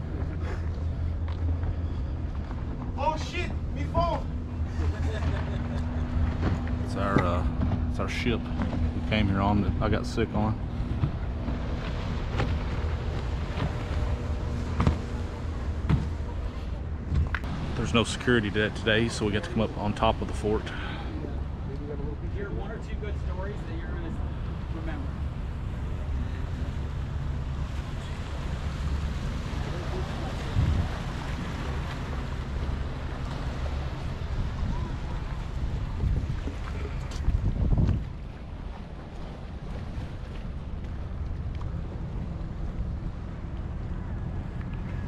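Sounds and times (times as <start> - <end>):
sea waves against stone wall: 0.0 - 45.0
wind buffeting microphone: 24.2 - 45.0.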